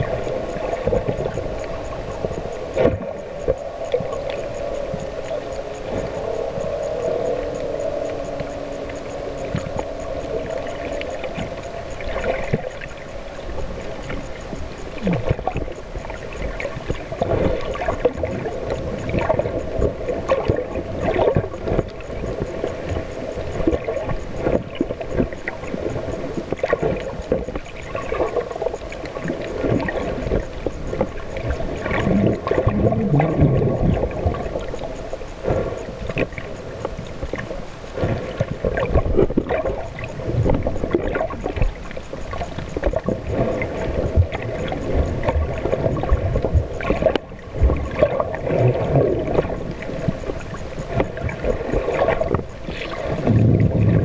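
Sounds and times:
low drone: 0:00.0 - 0:16.6
water sloshing underwater: 0:00.0 - 0:54.0.

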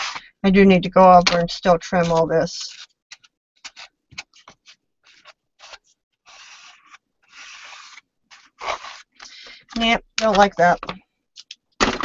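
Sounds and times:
paper scratching: 0:02.0 - 0:09.2
paper rustling: 0:02.0 - 0:10.4.

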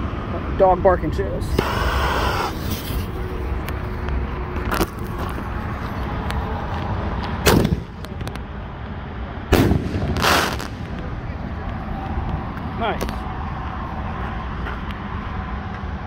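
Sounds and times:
firework shell bursting: 0:01.5 - 0:03.2, 0:09.5 - 0:11.1
firework mortar launch thump: 0:07.4 - 0:08.1, 0:09.5 - 0:11.1.

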